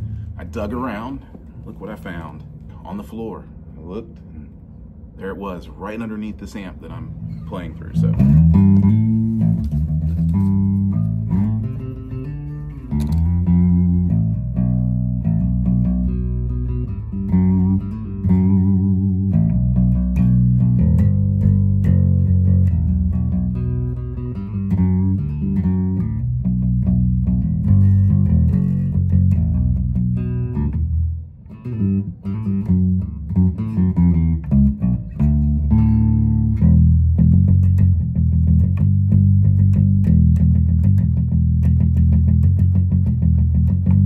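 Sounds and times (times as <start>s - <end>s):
electric bass notes: 0.0s - 44.0s.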